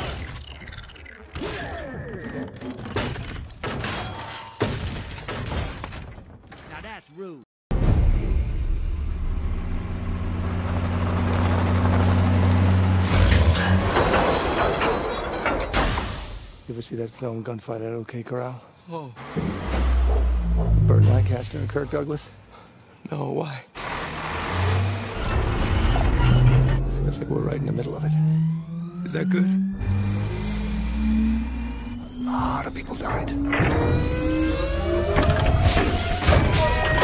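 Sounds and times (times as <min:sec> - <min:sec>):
truck engines droning: 0:09.2 - 0:15.5, 0:19.4 - 0:22.7, 0:23.8 - 0:37.0
heavy truck engine rumble: 0:09.6 - 0:15.4
film music: 0:26.8 - 0:37.0.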